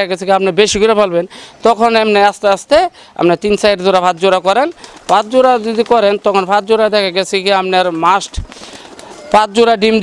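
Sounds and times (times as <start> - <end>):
man speaking: 0.0 - 8.5, 9.1 - 10.0
pigeons cooing: 8.4 - 9.4.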